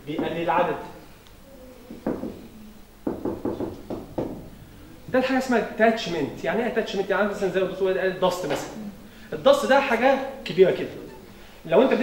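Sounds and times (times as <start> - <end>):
marker knocking on whiteboard: 0.2 - 0.4, 1.9 - 2.4, 3.0 - 4.5.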